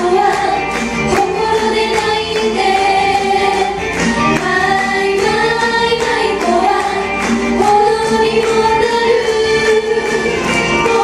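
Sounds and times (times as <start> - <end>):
women singing in unison into microphones: 0.0 - 11.0.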